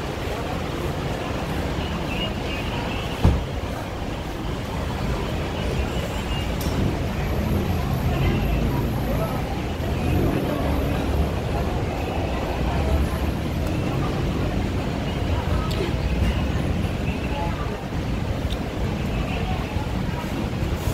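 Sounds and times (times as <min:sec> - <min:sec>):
faint indistinct voices: 0:00.0 - 0:20.9.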